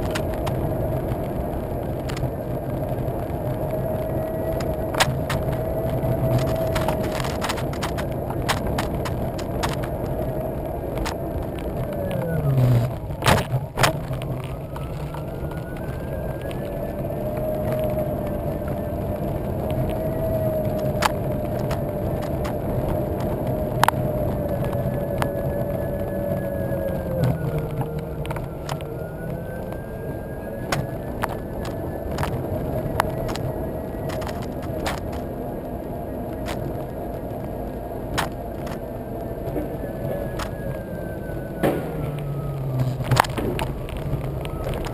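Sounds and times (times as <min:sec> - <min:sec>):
tyre and road rumble: 0:00.0 - 0:44.9
sharp clicks and knocks: 0:04.6 - 0:10.2.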